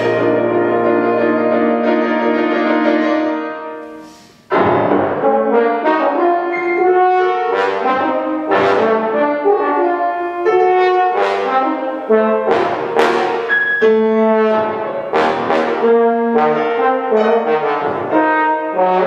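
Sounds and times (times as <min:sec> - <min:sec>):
bass trombone playing: 0:00.0 - 0:19.0
piano chords: 0:00.0 - 0:19.0.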